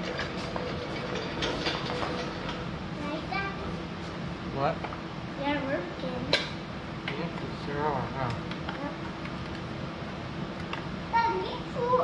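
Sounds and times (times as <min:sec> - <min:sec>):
steady low hum: 0:00.0 - 0:12.0
child talking: 0:03.0 - 0:03.8, 0:05.4 - 0:06.4, 0:11.1 - 0:12.0.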